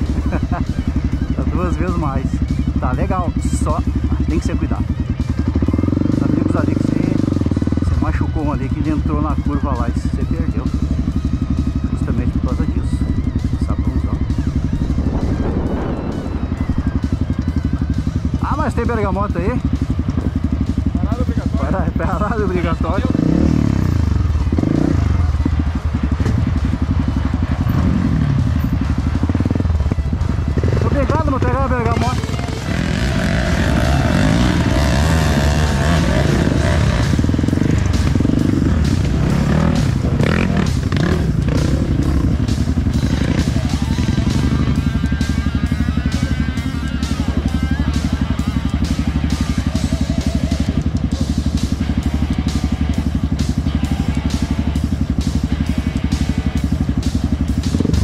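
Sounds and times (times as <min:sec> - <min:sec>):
dirt bike engines running: 0:00.0 - 0:58.0.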